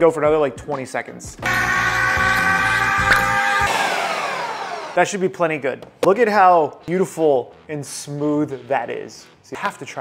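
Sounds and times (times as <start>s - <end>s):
blender motor winding down: 1.4s - 5.0s
blender running: 1.4s - 5.0s.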